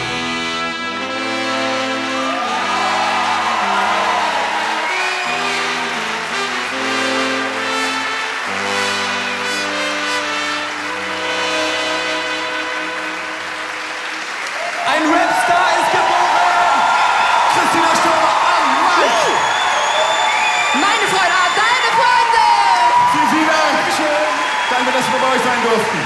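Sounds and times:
live band playing chords: 0.0s - 14.6s
audience cheering and applauding: 0.0s - 26.0s.

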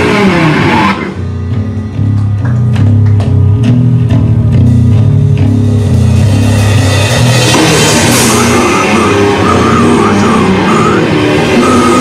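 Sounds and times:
distorted guitar and bass riff: 0.0s - 12.0s
drum hits: 2.0s - 10.9s
cymbals crashing: 5.8s - 11.8s.

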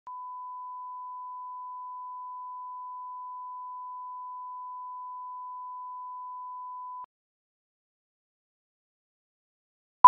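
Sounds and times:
sine-wave reference tone: 0.1s - 7.1s.

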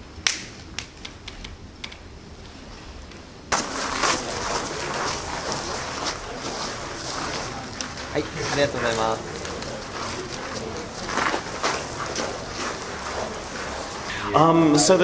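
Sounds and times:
faint voices: 3.5s - 15.0s
outdoor hubbub: 3.5s - 15.0s.

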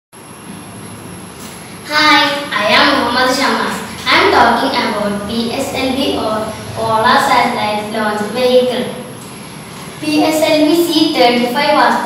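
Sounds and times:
faint high-pitched whine: 0.2s - 12.0s
room noise: 0.2s - 12.0s
boy speaking: 1.8s - 9.2s, 10.0s - 12.0s.

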